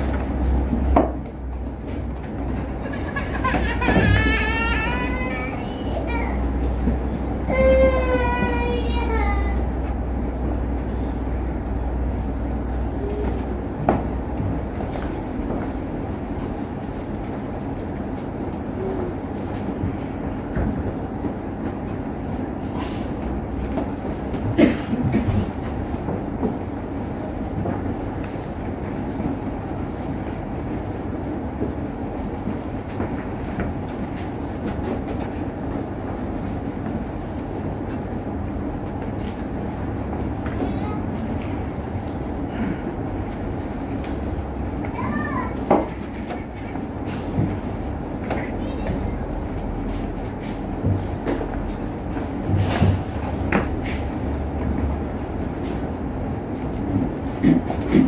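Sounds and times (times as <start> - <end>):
low room rumble: 0.0 - 58.0.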